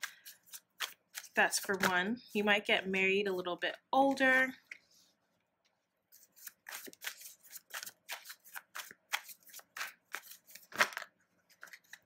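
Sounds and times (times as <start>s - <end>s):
cards being shuffled: 0.0s - 1.9s, 6.1s - 12.0s.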